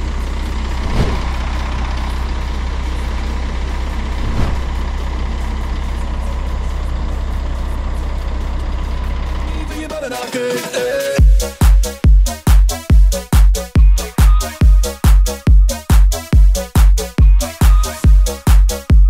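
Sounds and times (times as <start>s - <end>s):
diesel truck engine idling: 0.0s - 19.0s
electronic music: 10.6s - 19.0s.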